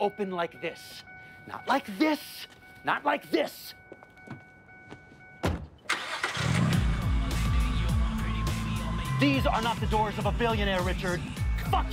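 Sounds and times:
car door slamming: 0:05.4 - 0:05.9
car engine starting: 0:05.7 - 0:11.9
loud music with heavy bass: 0:06.6 - 0:11.9.

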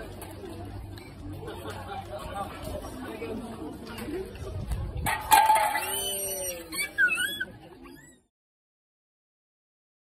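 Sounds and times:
people chattering: 0:00.0 - 0:08.3.

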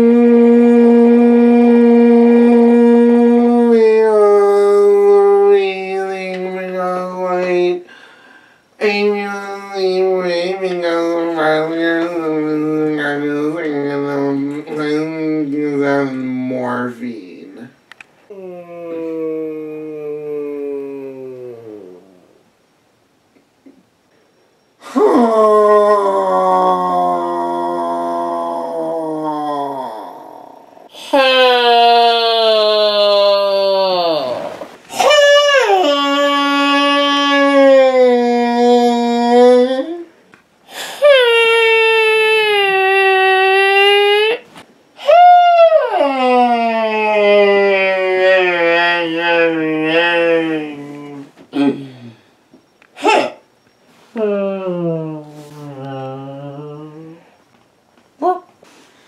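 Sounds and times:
man wailing: 0:00.0 - 0:07.8, 0:08.8 - 0:15.4, 0:18.3 - 0:22.2, 0:24.8 - 0:40.1, 0:40.9 - 0:44.4, 0:45.0 - 0:52.0, 0:53.0 - 0:53.4
man howling low note: 0:18.3 - 0:22.3, 0:24.8 - 0:40.0.

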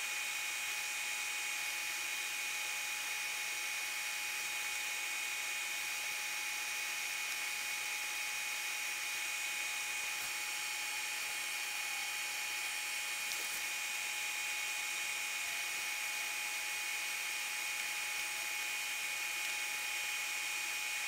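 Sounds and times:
faint high whine: 0:00.0 - 0:21.0.

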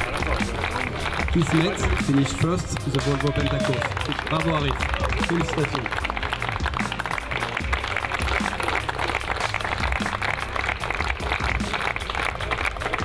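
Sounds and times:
background music: 0:00.0 - 0:13.0
crowd applauding: 0:00.0 - 0:13.0.

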